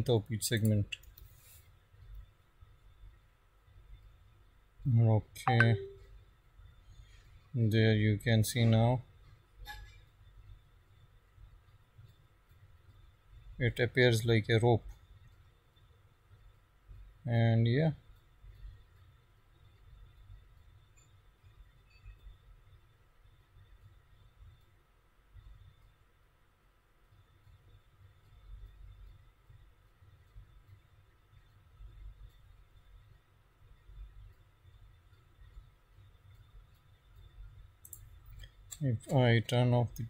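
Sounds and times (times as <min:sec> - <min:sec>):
computer mouse clicks: 0:36.3 - 0:39.2.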